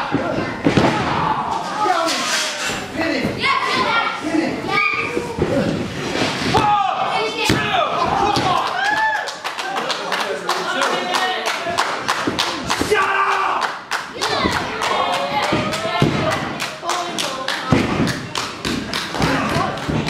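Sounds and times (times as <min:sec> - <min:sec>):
rapid repeated thuds: 0:14.3 - 0:16.6.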